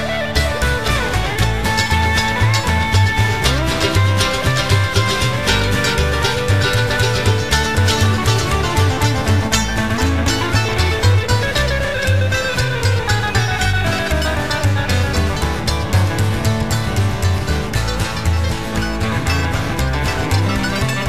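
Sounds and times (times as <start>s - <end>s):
drums: 0.0s - 21.0s
electric guitar: 0.0s - 21.0s
upright bass: 0.0s - 21.0s.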